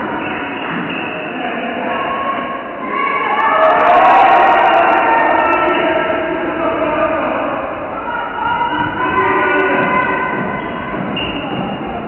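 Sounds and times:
din of voices: 1.2s - 12.0s.

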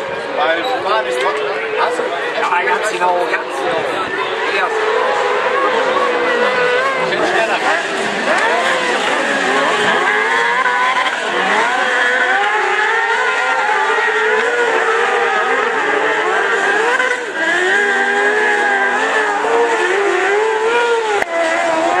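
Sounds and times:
racing kart engines revving: 0.0s - 22.0s.

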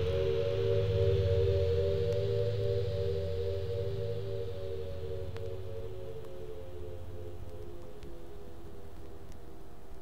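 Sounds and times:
low drone: 0.0s - 9.4s.

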